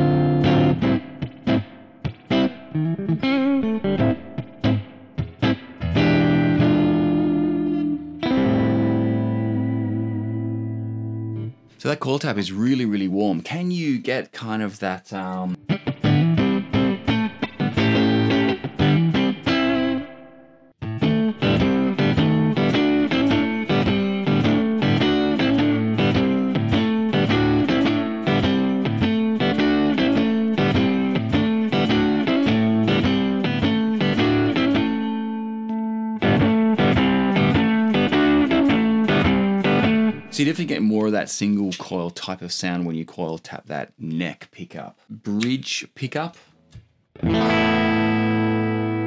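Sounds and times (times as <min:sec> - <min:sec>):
electric guitar picked notes: 0:00.0 - 0:11.7, 0:15.5 - 0:40.9, 0:47.2 - 0:49.0.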